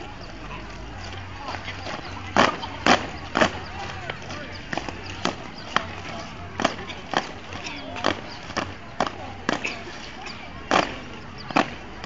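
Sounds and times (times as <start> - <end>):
boots stamping on brick paving: 0.0 - 12.0.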